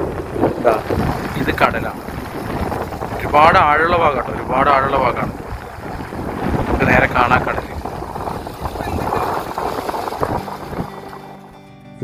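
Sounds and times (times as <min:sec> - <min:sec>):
sea washing against rocks: 0:00.0 - 0:11.6
wind buffeting microphone: 0:00.0 - 0:11.6.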